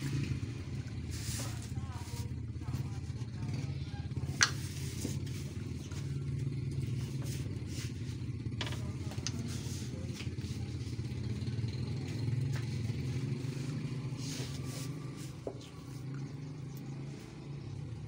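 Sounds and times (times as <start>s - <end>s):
low engine hum: 0.0s - 18.0s.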